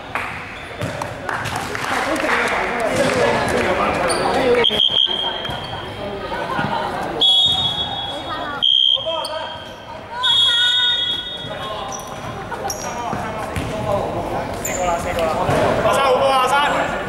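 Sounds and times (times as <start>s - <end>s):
referee's whistle: 4.6s - 5.7s, 7.2s - 12.0s
people calling out: 6.9s - 12.0s.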